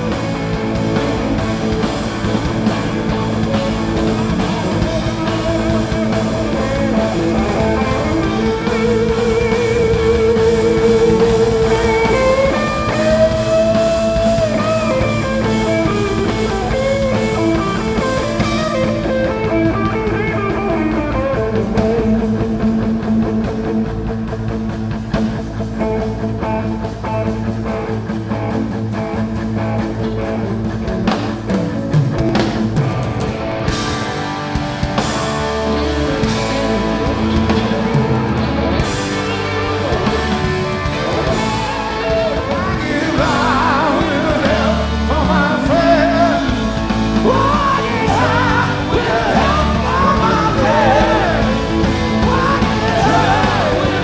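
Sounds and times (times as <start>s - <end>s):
live rock band playing: 0.0s - 54.0s
wavering lead guitar line: 0.0s - 54.0s.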